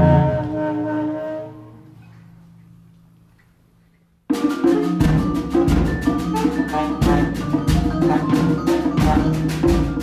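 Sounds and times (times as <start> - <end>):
saxophone and percussion ensemble: 0.0 - 1.9, 4.3 - 10.0.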